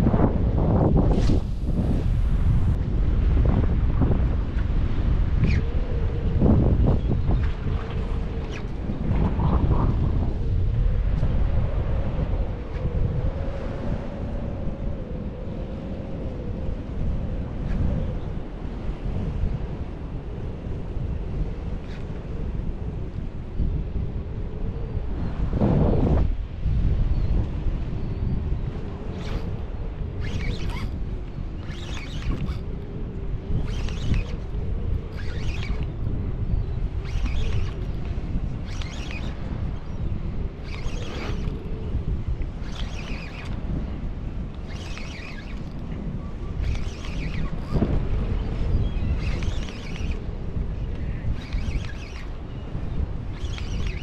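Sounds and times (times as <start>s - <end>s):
gusty wind on microphone: 0.0s - 54.0s
choppy water along rocks: 28.4s - 54.0s.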